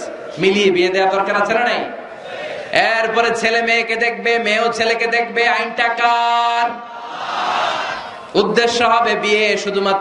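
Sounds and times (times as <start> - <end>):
man's amplified voice holding a note: 0.0 - 2.0, 2.7 - 6.9, 8.3 - 10.0.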